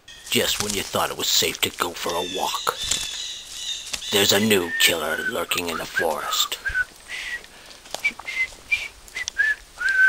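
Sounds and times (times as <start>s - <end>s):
person whistling a tune: 4.6s - 7.4s, 8.0s - 10.0s.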